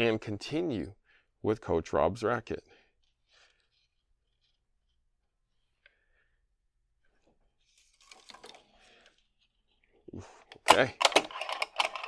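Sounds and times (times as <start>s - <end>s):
string rustling: 3.0s - 6.1s, 7.0s - 10.0s.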